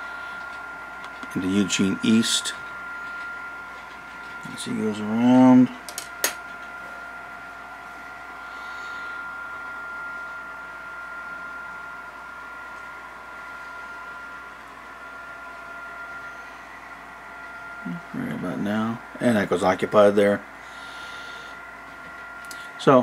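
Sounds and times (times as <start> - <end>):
machine hum with high whine: 0.0 - 23.0.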